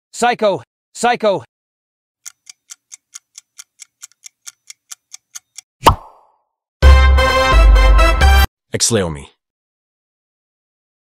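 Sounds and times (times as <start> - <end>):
clock ticking: 2.2 - 5.6.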